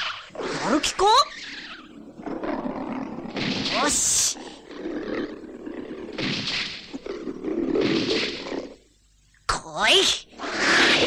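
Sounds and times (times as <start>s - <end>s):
monster roaring: 2.0s - 6.2s.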